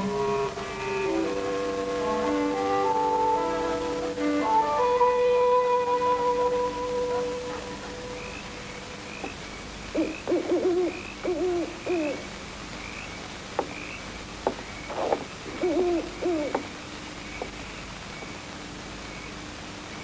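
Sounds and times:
owl hooting: 0.0s - 12.4s, 14.6s - 17.6s.

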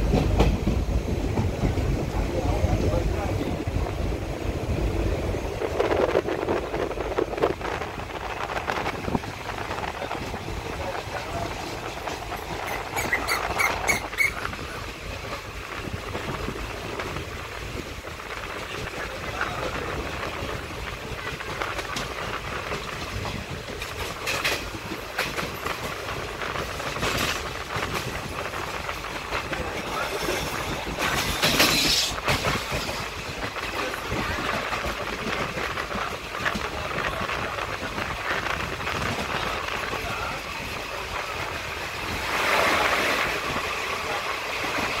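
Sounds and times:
train rumble and rattle: 0.0s - 45.0s
rushing air: 37.5s - 45.0s.

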